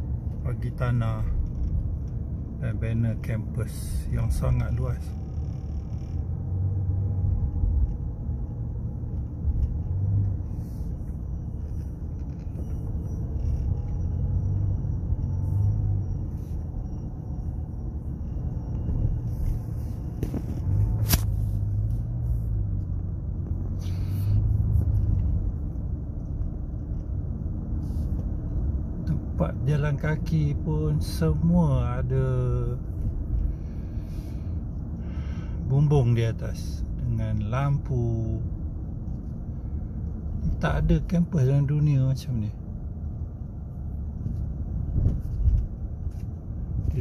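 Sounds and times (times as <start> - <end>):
car cabin engine and tyre rumble: 0.0 - 47.0.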